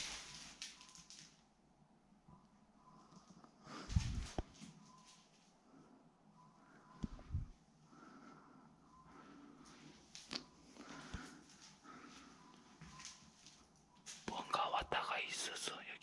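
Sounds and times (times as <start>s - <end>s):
man whispering: 14.2s - 16.0s.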